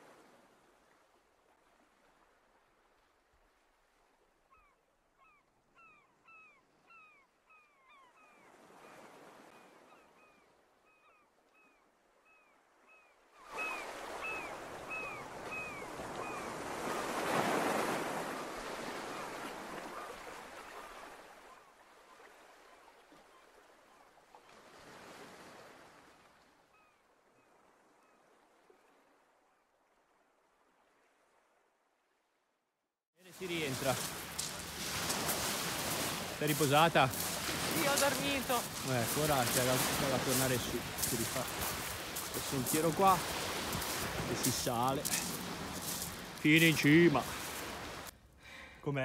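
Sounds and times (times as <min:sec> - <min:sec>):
waves breaking on beach: 0:00.0 - 0:04.4, 0:08.4 - 0:10.3, 0:13.3 - 0:31.7, 0:33.2 - 0:49.0.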